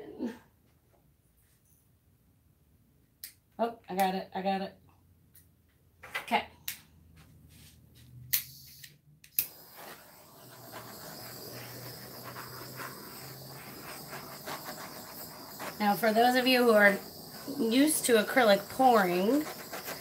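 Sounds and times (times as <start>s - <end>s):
torch flame hissing: 9.4s - 20.0s.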